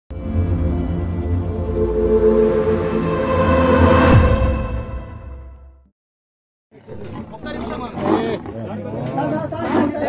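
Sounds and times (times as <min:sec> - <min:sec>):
leopard growling: 0:06.8 - 0:10.0
men talking: 0:06.8 - 0:10.0.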